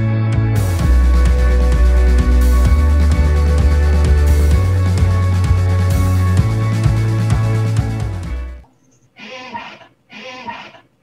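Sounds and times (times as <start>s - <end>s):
short animal calls: 9.2s - 10.9s.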